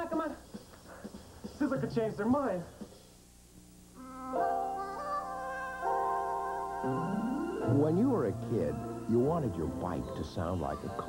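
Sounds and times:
held musical notes: 0:04.0 - 0:11.0.

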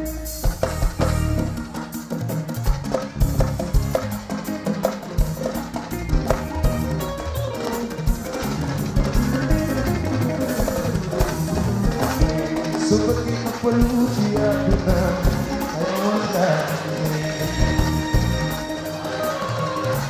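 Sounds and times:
drum kit driving beat: 0:00.0 - 0:20.0
live band playing: 0:00.0 - 0:20.0.

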